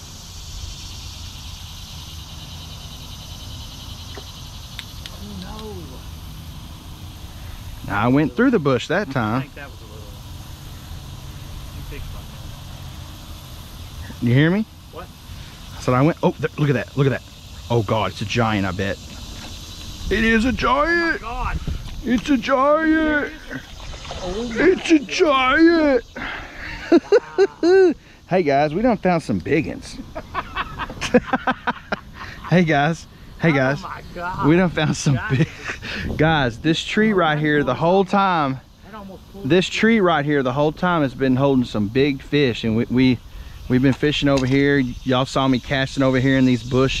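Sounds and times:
low outdoor rumble: 0.0s - 47.0s
man laughing in breathy bursts: 26.1s - 28.2s, 30.0s - 32.7s, 34.8s - 36.2s.

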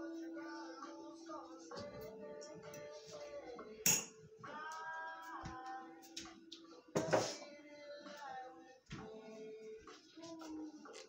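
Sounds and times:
person singing with music: 0.0s - 11.0s.

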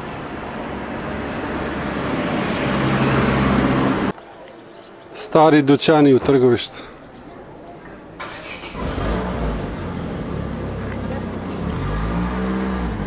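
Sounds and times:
car engine starting and running: 8.2s - 13.0s.

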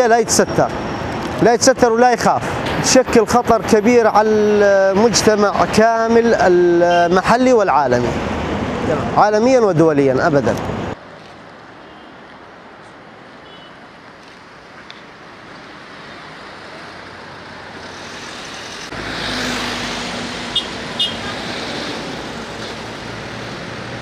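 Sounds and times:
street traffic noise: 0.0s - 24.0s
vehicle engine humming: 14.0s - 24.0s.

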